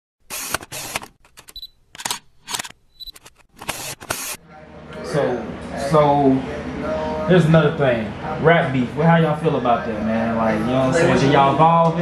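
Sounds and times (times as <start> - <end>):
camera shutter clicks: 0.3 - 4.4
mechanical whirrs: 0.3 - 4.4.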